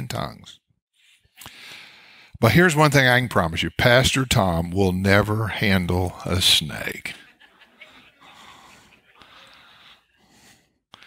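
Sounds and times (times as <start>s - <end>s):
faint congregation laughter: 7.1s - 10.1s.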